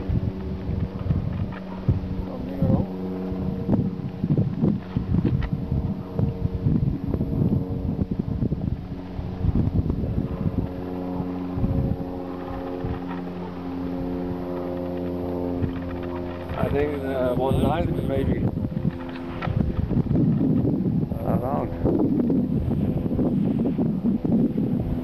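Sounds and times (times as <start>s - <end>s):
paramotor engine droning: 0.0s - 25.0s
wind buffeting microphone: 0.0s - 25.0s.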